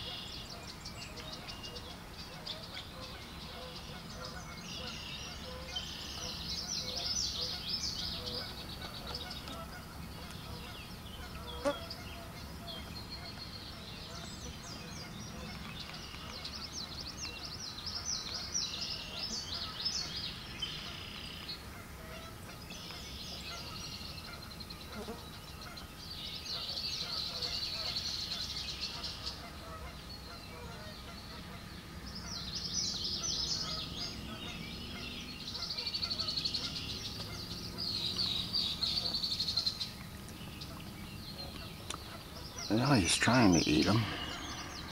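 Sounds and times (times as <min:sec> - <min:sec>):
birds chattering and trilling: 0:00.0 - 0:44.9.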